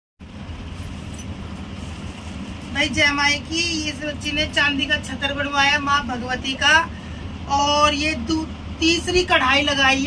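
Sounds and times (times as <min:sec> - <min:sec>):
low rumble with hiss: 0:00.2 - 0:10.0.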